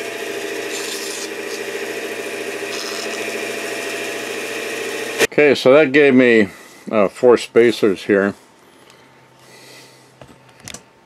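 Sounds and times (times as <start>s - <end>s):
bandsaw humming: 0.0s - 5.3s
saw blade cutting wood: 0.0s - 5.3s.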